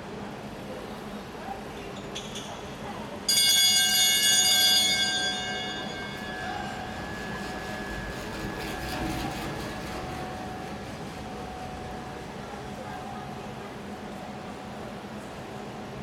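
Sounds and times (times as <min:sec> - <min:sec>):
bell clanging: 0:03.3 - 0:10.8.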